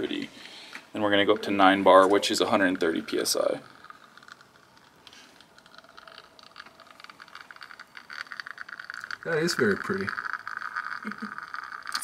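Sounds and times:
espresso trickling into cup: 0.0 - 12.0.

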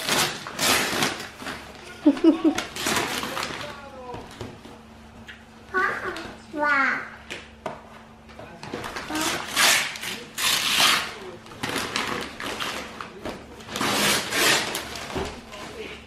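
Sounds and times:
wrapping paper rustling and tearing: 0.0 - 4.0, 8.8 - 16.0.

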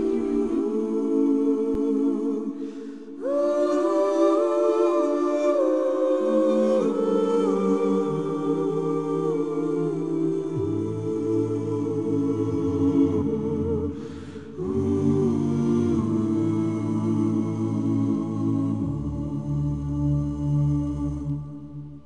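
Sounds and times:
voices humming held chords: 0.0 - 22.0.

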